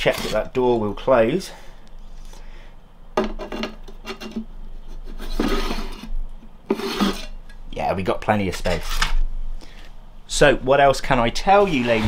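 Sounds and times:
glass rubbing and scraping: 0:11.6 - 0:12.0.

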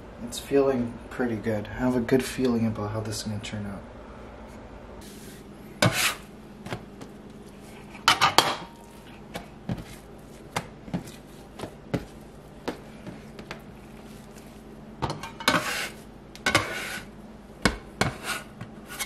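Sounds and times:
faint steady hum: 0:00.0 - 0:19.0
bench scraper scraping countertop: 0:05.8 - 0:06.2, 0:15.4 - 0:17.1, 0:18.0 - 0:19.0.

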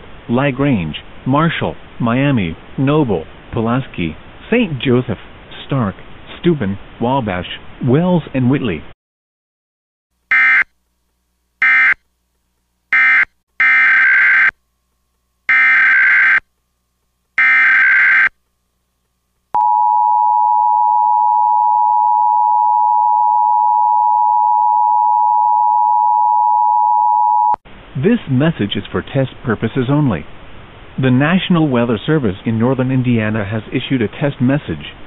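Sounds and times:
warbling data bursts: 0:15.5 - 0:16.4, 0:17.4 - 0:18.3.

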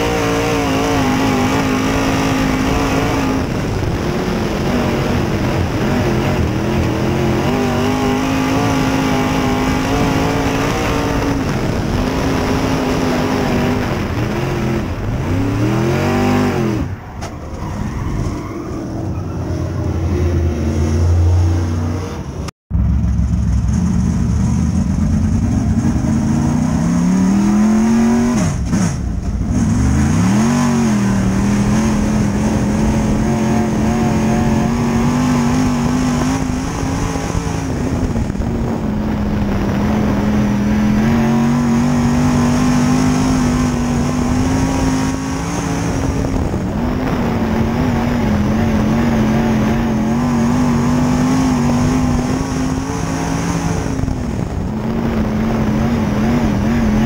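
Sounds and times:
race car engine revving: 0:00.0 - 0:57.0.

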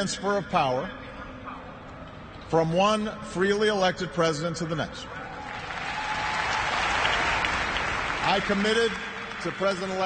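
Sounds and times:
audience applauding: 0:05.4 - 0:10.0.

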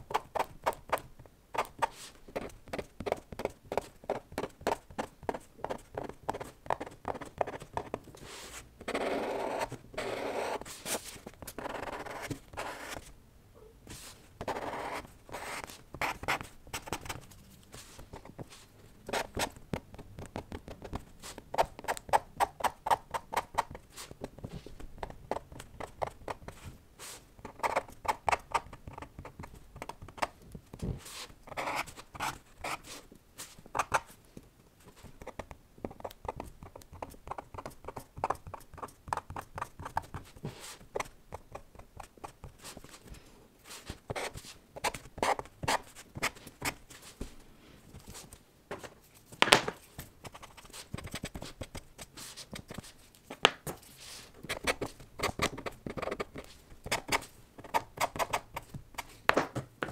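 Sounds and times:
pen scratching on paper: 0:01.6 - 0:13.1, 0:14.4 - 0:18.5, 0:54.5 - 0:58.6.

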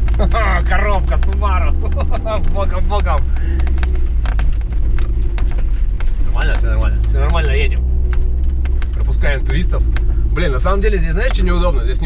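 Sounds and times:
car engine drone inside cabin: 0:00.0 - 0:12.0
sharp clicks and knocks: 0:00.0 - 0:12.0.

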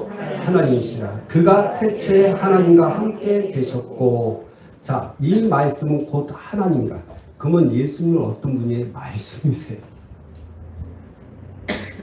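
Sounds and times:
cough into microphone: 0:11.6 - 0:12.0.

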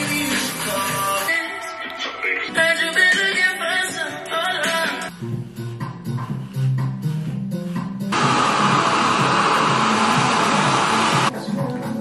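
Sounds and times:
background music: 0:00.0 - 0:12.0
hair dryer blowing: 0:08.1 - 0:11.3.

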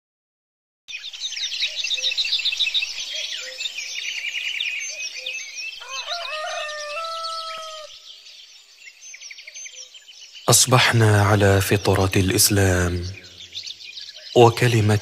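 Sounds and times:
small birds chirping: 0:00.9 - 0:15.0
rooster crowing: 0:05.8 - 0:08.0.

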